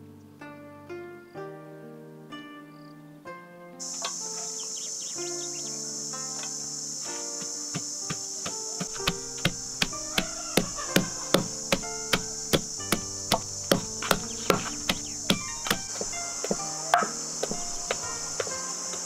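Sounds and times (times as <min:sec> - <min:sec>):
wooden pestle pounding in mortar: 0:07.4 - 0:18.6.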